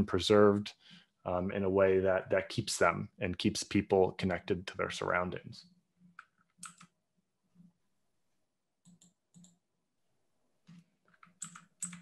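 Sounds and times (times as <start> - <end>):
keyboard clicks: 6.2 - 7.0, 11.1 - 12.0.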